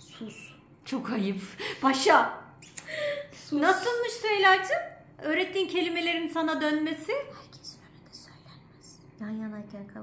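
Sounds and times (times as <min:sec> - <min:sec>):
woman's voice: 0:00.0 - 0:02.5, 0:03.2 - 0:10.0.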